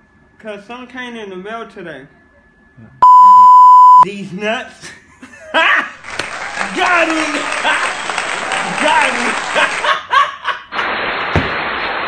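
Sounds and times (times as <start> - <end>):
high electronic beep: 3.0 - 4.1.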